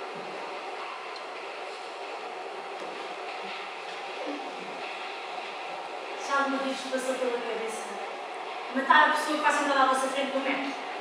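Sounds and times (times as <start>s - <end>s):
train running: 0.0s - 11.0s.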